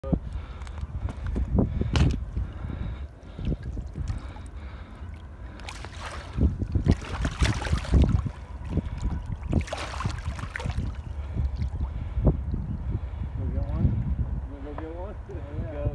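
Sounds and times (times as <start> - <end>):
steady low rumble: 0.0 - 15.9
fish splashing in water: 3.3 - 12.0.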